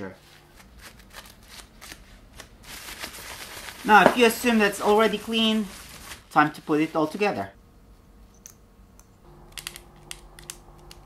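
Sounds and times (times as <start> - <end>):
tissue paper rustling: 0.2 - 7.3.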